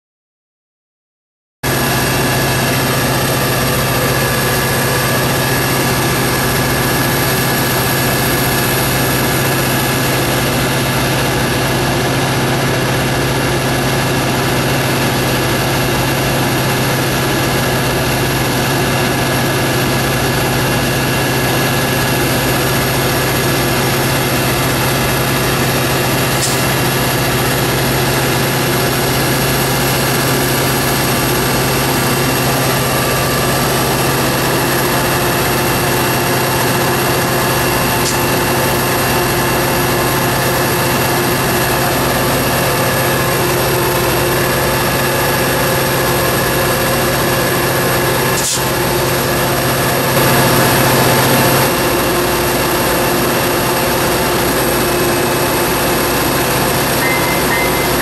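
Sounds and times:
diesel locomotive engine drone: 1.6s - 58.0s.

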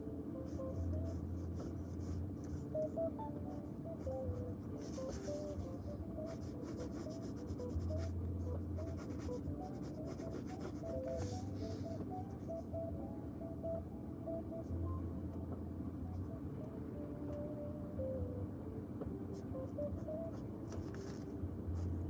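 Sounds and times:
faint low hum: 0.0s - 22.0s
pen scratching on paper: 6.3s - 8.1s, 8.8s - 11.8s.

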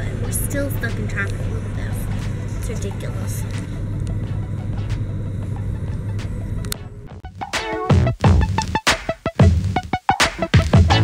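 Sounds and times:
background music with a beat: 0.0s - 11.0s.

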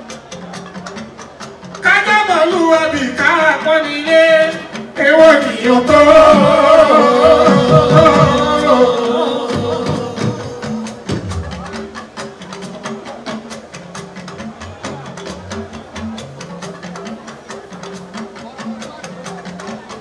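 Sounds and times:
percussion rhythm: 0.0s - 20.0s
person singing: 1.8s - 11.8s.

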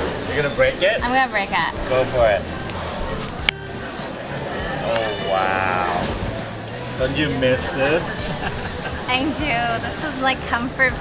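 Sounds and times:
murmur of indoor market: 0.0s - 11.0s.

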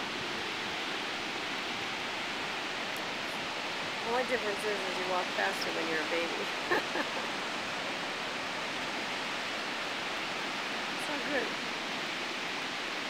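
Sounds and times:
ocean surf breaking: 0.0s - 13.0s.

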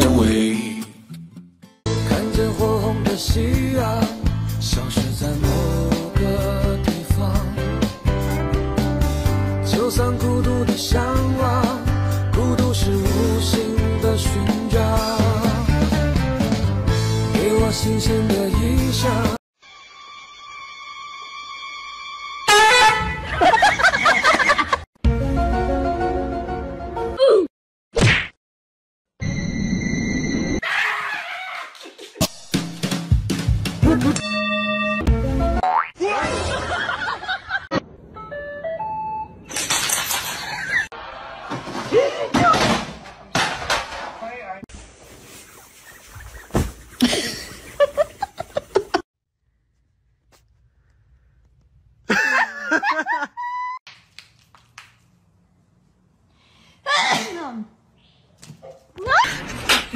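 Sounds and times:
person sneezing: 56.9s - 57.6s.

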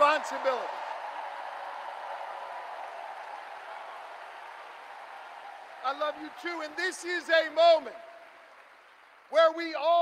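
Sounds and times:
arena crowd cheering and applauding: 0.0s - 10.0s.

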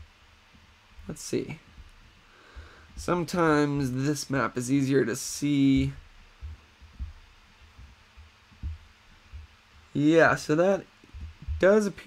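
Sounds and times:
soft low thumps: 0.0s - 12.0s.

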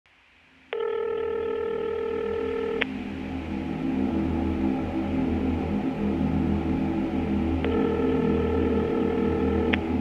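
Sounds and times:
low synthesizer drone: 0.5s - 10.0s
electronic beep tone: 7.7s - 9.8s.

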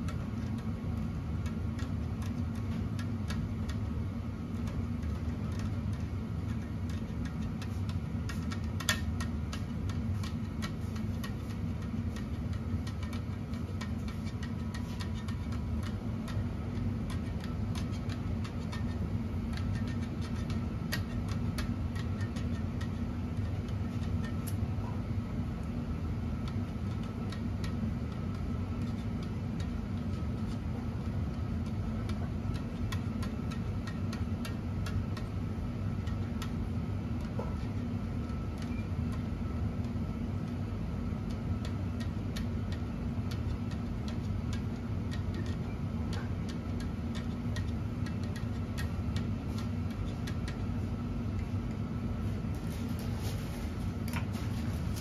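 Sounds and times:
racquet string ticking and clicking: 0.0s - 24.7s, 25.6s - 53.1s
steady low hum: 0.0s - 55.0s.

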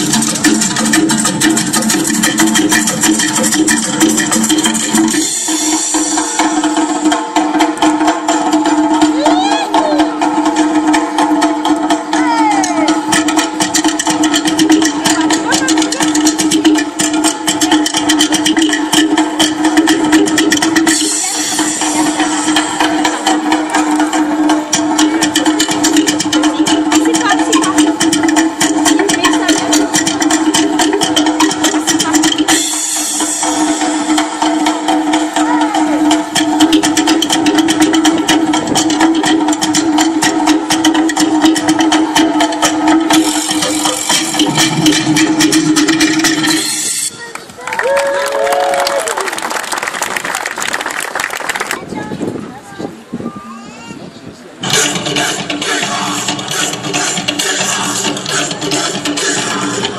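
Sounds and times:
fast slit log drum music: 0.0s - 47.3s, 54.6s - 59.9s.

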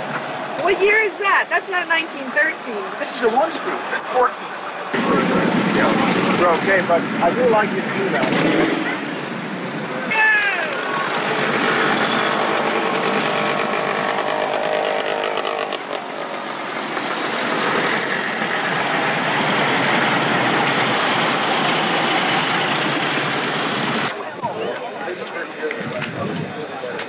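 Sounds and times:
crowd voices: 0.0s - 27.0s
motorcycle engines running: 5.0s - 10.0s, 10.6s - 24.2s.

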